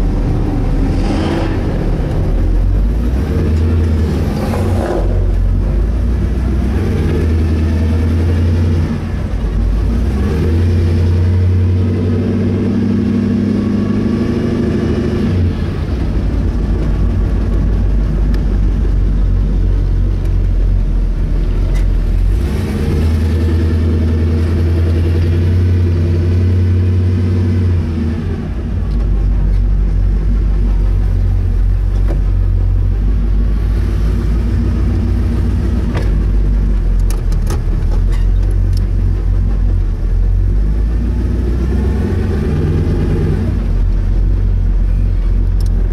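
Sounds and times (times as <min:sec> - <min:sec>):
car engine running deep: 0:00.0 - 0:45.9.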